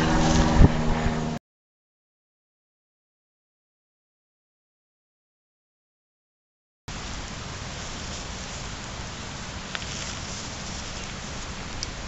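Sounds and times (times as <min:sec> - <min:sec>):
low rumble: 0:00.0 - 0:01.4
steady hiss: 0:06.9 - 0:12.0.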